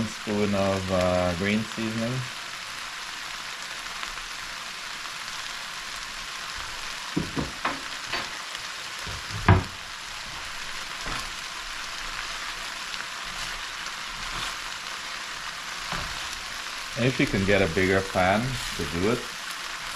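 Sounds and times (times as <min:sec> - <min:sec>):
food sizzling in a pan: 0:00.0 - 0:19.9
utensil knocking on pan: 0:07.2 - 0:08.2, 0:09.1 - 0:09.8.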